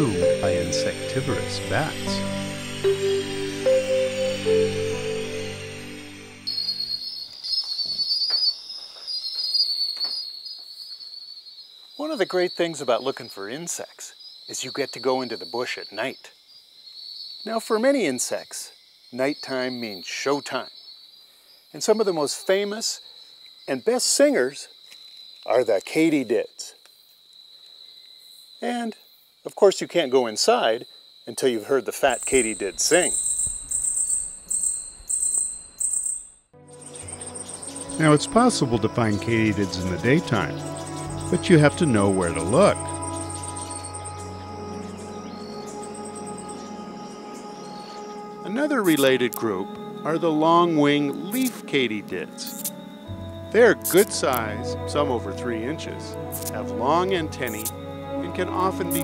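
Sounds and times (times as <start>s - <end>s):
soft background music: 0.0s - 6.9s, 36.6s - 59.0s
insects buzzing trill: 0.0s - 59.0s.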